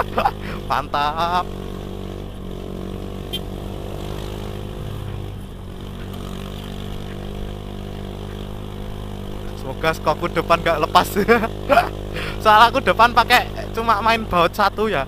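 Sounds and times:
scooter engine climbing hill: 0:00.0 - 0:15.0.

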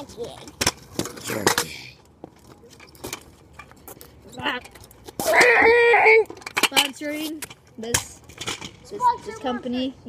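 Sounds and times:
kick scooters rolling on concrete: 0:00.0 - 0:10.0.

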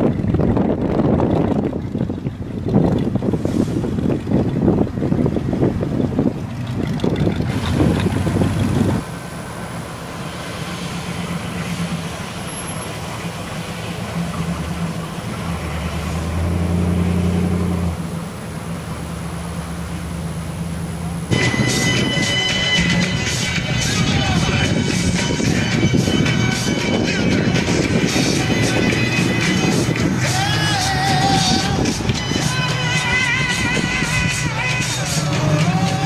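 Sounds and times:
wind buffeting microphone: 0:00.0 - 0:09.2, 0:21.3 - 0:36.0
pickup truck engine running: 0:00.0 - 0:36.0.

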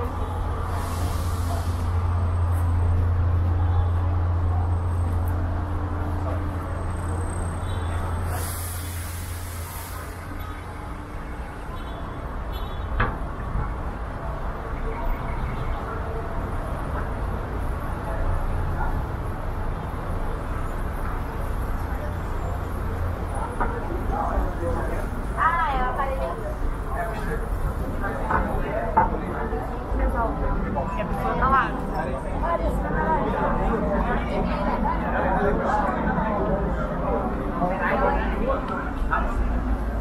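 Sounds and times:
city street traffic: 0:00.0 - 0:40.0
heavy vehicle engine rumbling: 0:00.0 - 0:40.0
passersby talking: 0:00.0 - 0:40.0.

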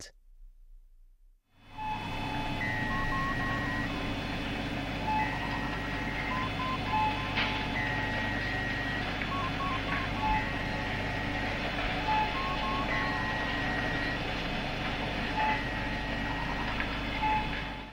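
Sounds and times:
steady low hum: 0:00.0 - 0:17.9.

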